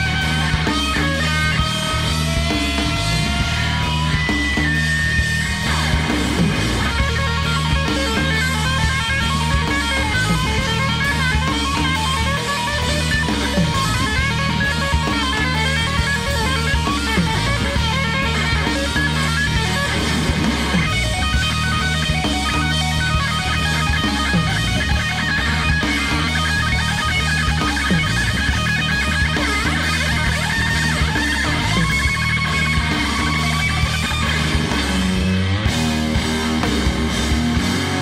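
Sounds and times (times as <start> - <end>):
bass guitar: 0.0 - 38.0
drums: 0.0 - 38.0
electric guitar lead with bending notes: 0.0 - 38.0.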